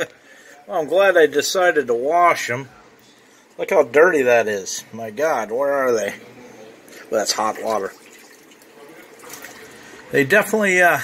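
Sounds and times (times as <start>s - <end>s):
water sloshing in washing machine: 7.1s - 10.2s.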